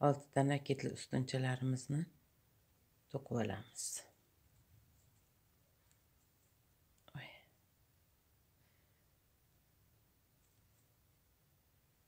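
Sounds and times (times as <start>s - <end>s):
soft whisper-like breath: 7.0s - 7.6s, 8.5s - 9.3s.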